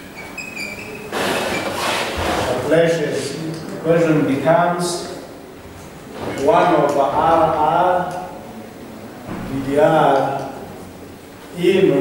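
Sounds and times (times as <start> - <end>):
chalk squeaking on blackboard: 0.0 - 2.3.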